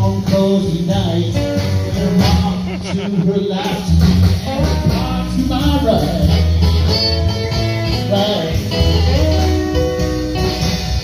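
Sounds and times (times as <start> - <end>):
blues guitars: 0.0 - 11.0
drum kit: 0.0 - 11.0
held bass notes: 0.0 - 11.0.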